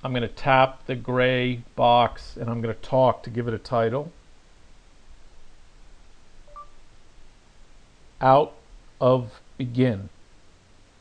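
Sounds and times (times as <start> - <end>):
two-note rising beep: 6.5 - 6.8.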